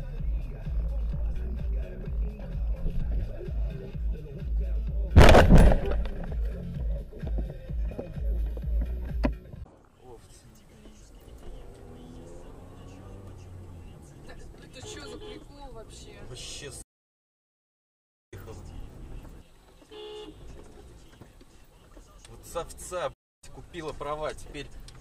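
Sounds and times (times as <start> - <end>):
music: 0.0 - 5.2, 5.9 - 9.7
voices in car: 0.0 - 5.2, 6.5 - 16.8, 18.4 - 25.0
car low rumble: 0.0 - 16.4, 18.4 - 22.9.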